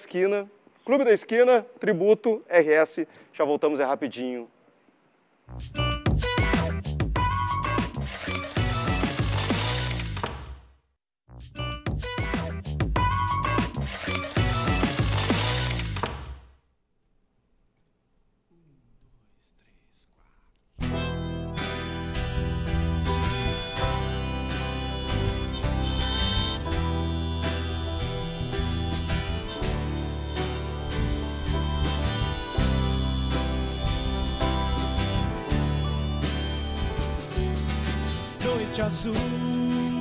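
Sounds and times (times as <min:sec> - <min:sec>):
acoustic guitar: 0:20.8 - 0:40.0
harmonica: 0:20.8 - 0:40.0
grand piano: 0:21.0 - 0:40.0.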